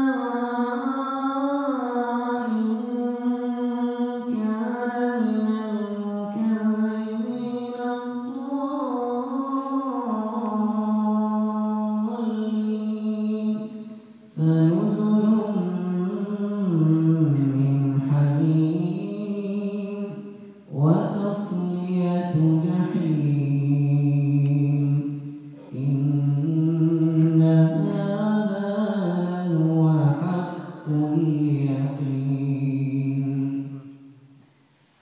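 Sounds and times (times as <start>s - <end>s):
man chanting melodically: 0.0s - 34.0s.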